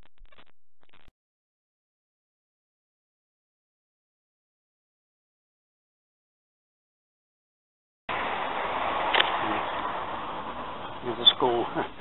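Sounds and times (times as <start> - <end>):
city traffic hiss: 8.1 - 12.0.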